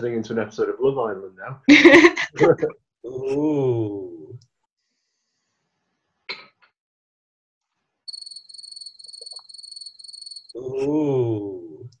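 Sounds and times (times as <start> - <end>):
crickets chirping: 8.1 - 10.6.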